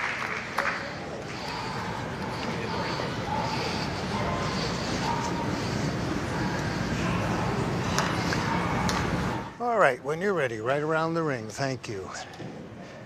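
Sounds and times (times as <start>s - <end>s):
crowd cheering and applauding: 0.0s - 1.4s.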